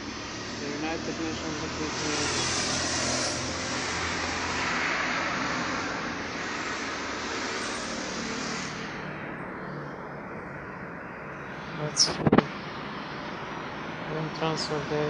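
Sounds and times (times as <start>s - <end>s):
vehicle passing: 0.0s - 15.0s.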